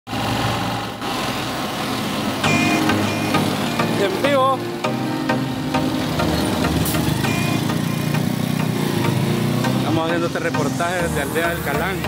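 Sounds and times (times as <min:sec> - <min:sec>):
small motorcycle engine running: 0:06.3 - 0:09.9.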